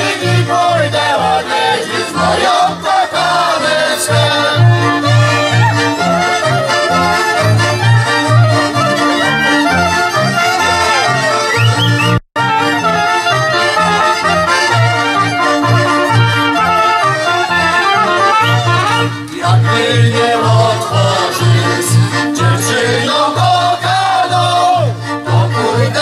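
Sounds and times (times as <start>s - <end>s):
accordion: 0.0s - 26.0s
double bass pulsing: 0.0s - 26.0s
clarinet: 0.5s - 23.6s
fiddles: 1.1s - 23.5s
trumpet: 1.5s - 23.6s.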